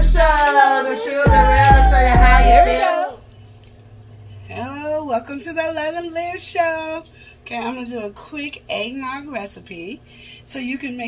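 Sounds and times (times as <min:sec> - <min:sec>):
woman calling out: 0:00.0 - 0:03.2
music: 0:00.0 - 0:03.3
woman speaking: 0:04.5 - 0:11.0.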